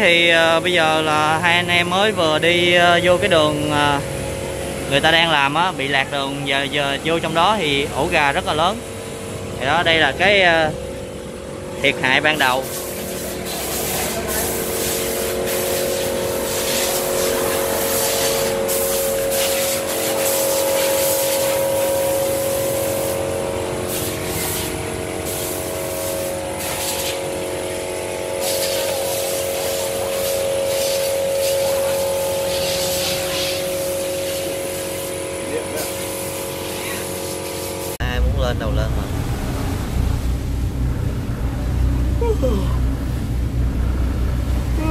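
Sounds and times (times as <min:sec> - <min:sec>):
steady engine hum: 0:00.0 - 0:44.9.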